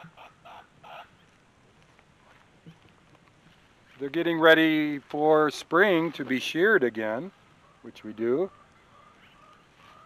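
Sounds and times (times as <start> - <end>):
chicken clucking: 0.0 - 1.2, 8.4 - 10.0.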